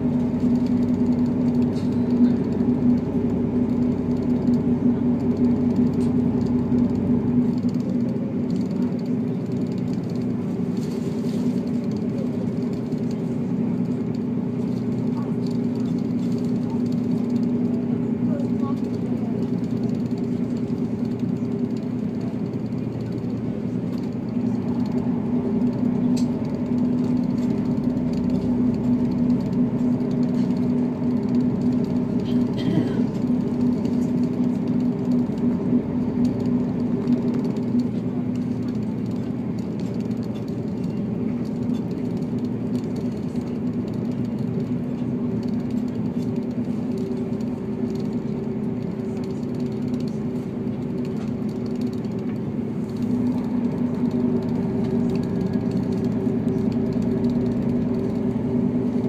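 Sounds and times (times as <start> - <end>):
diesel engine drone: 0.0 - 59.0
wheels rumbling on rails: 0.0 - 59.0.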